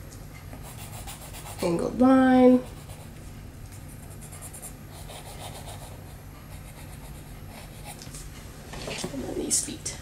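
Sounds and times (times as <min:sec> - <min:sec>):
steady low hum: 0:00.0 - 0:10.0
pencil scratching on paper: 0:00.6 - 0:01.9, 0:02.5 - 0:03.1, 0:03.9 - 0:08.0.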